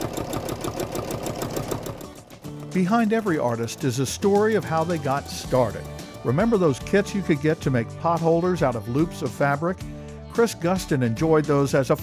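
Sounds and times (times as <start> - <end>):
sewing machine stitching: 0.0 - 6.2.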